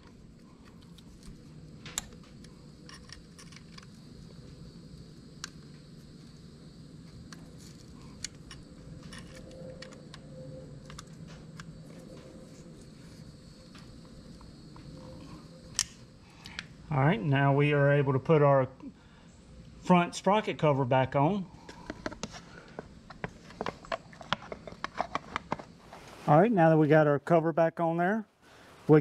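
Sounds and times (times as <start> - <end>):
faint steady hum: 0.0 - 29.0.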